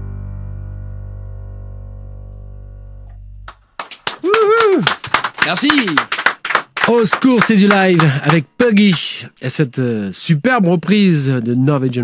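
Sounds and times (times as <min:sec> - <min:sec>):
guitar chord ringing: 0:00.0 - 0:03.4
person exclaiming: 0:04.2 - 0:04.9.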